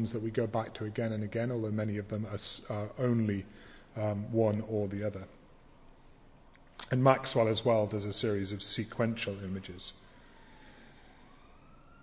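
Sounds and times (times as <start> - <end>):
emergency vehicle siren wailing: 9.8 - 12.0.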